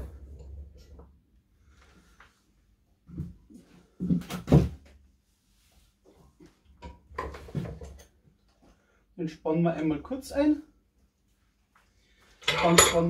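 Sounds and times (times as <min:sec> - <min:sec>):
metal bench vise clanking: 0:12.4 - 0:13.0.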